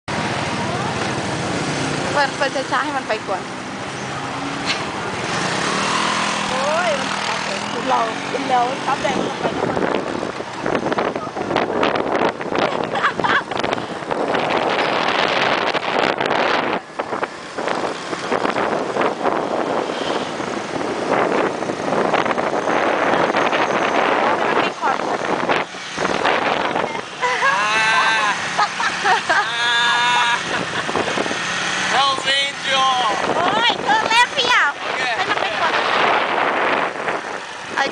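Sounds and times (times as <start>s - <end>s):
road and wind noise: 0.1s - 37.9s
motor scooter engine hum: 0.2s - 32.1s
voices speaking: 2.0s - 4.2s, 6.4s - 10.1s, 24.1s - 37.9s.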